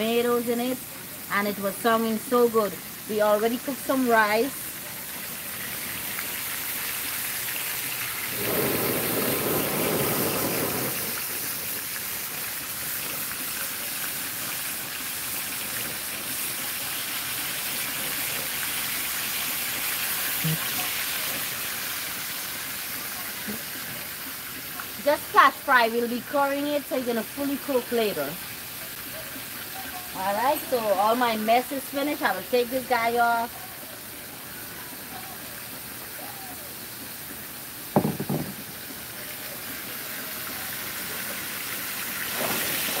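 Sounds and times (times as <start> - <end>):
fish sizzling in hot oil: 0.0 - 43.0.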